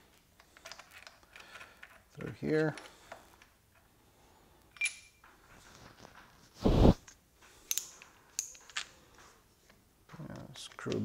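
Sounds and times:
light metallic clicks and clinks: 0:04.7 - 0:05.3.

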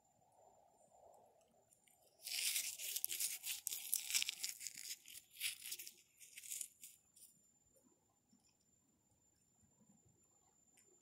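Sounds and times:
hands scraping crystals and soil: 0:02.2 - 0:07.3.

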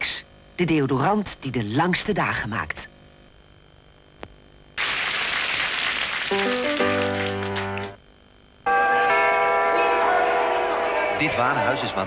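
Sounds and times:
click: 0:04.2 - 0:04.4.

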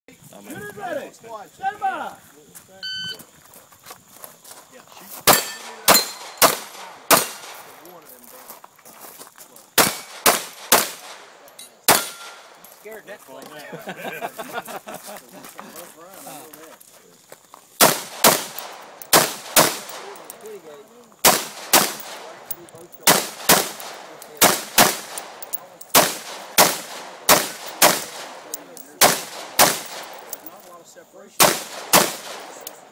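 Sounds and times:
shot timer beep: 0:02.8 - 0:03.2
gunshots: 0:05.3 - 0:07.8, 0:09.8 - 0:12.6, 0:17.8 - 0:20.6, 0:21.2 - 0:30.5, 0:31.4 - 0:32.9
rifle shots with echo: 0:05.3 - 0:07.8, 0:09.8 - 0:12.6, 0:17.8 - 0:20.6, 0:21.2 - 0:30.5, 0:31.4 - 0:32.9.

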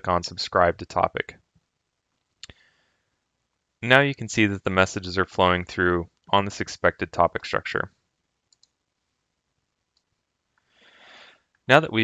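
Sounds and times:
computer mouse click: 0:08.5 - 0:08.8.

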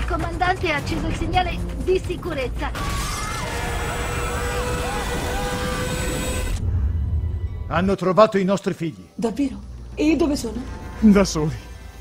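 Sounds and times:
passengers screaming: 0:02.8 - 0:06.6
loud rushing roar: 0:03.4 - 0:06.9
low rumble: 0:03.9 - 0:07.9.

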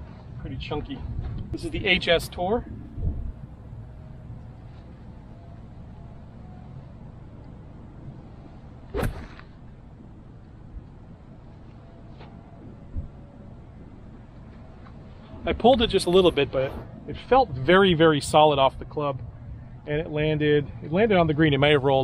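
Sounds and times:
golf club striking ball: 0:08.9 - 0:09.5.

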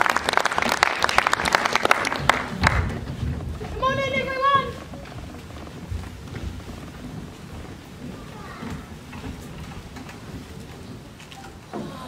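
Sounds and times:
faint knocks: 0:02.1 - 0:12.0.

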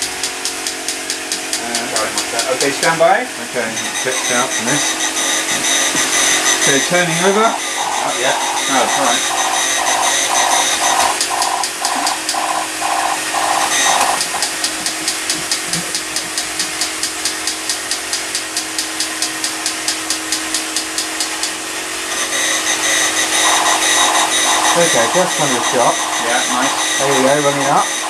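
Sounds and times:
toy robot motors whirring: 0:03.9 - 0:28.0
gears clicking: 0:07.6 - 0:21.5.

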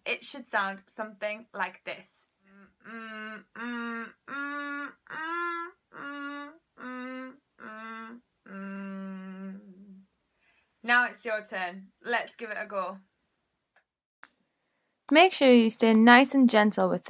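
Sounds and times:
woman humming with vocal fry: 0:02.5 - 0:10.1.

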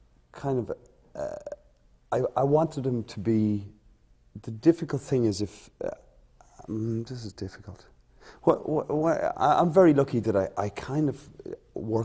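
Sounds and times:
man speaking haltingly: 0:00.4 - 0:03.7, 0:06.6 - 0:12.0.

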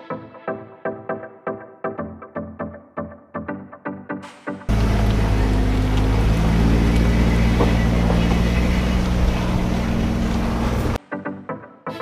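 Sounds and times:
motorhome engine running: 0:04.7 - 0:11.0.

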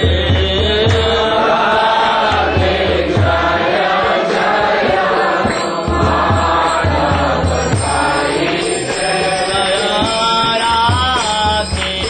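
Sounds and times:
low beating accompaniment: 0:00.0 - 0:12.0
voices chanting: 0:00.6 - 0:11.4.

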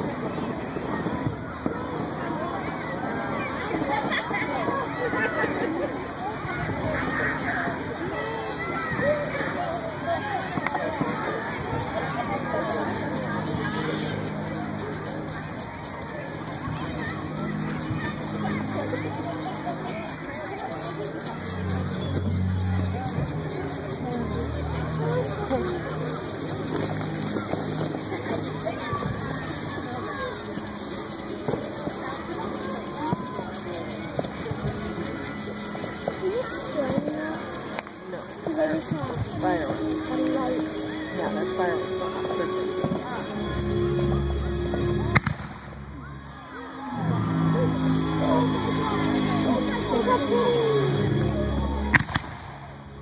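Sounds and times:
crowd chatter: 0:00.0 - 0:53.0
firework hissing as it climbs: 0:17.4 - 0:46.3
music with deep bass notes: 0:39.1 - 0:53.0
firework launch bang: 0:45.2 - 0:45.6
firework pop: 0:45.2 - 0:45.6.

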